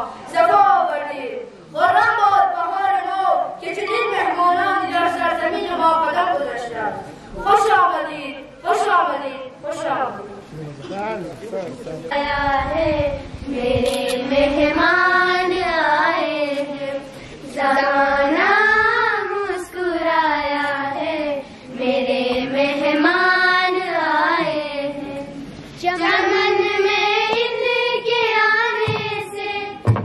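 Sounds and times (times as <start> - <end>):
child singing a chant: 0.0 - 10.1, 12.1 - 30.0.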